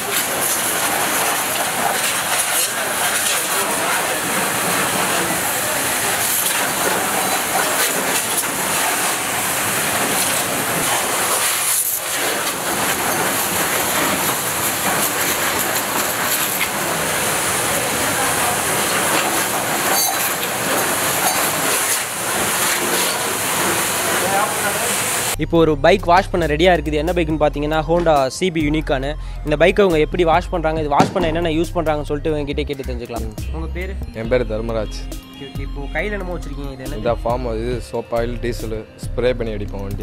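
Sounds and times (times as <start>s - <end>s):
hose water jet spraying: 0.0s - 25.4s
water splattering off motorcycle: 0.0s - 25.4s.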